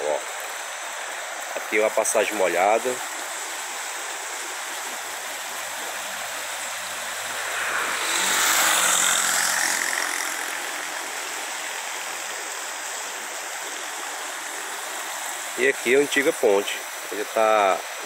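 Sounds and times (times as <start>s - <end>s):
floodwater rushing through culvert: 0.0s - 18.0s.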